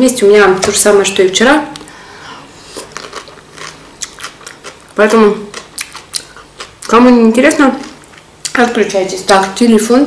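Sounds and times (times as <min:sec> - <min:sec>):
person chewing food: 0:01.8 - 0:06.9.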